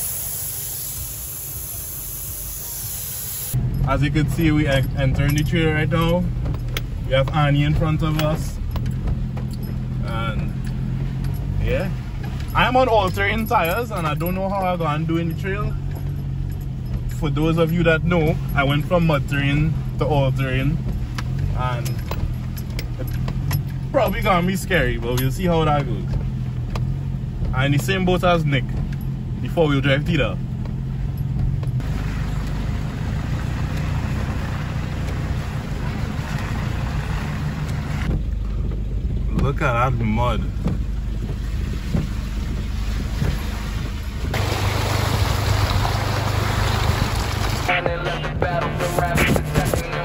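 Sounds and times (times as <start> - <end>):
hissy noise: 0.0 - 3.6
engine and road rumble: 0.0 - 50.0
small rattling clicks: 4.6 - 11.6, 20.8 - 24.2
music: 47.7 - 50.0.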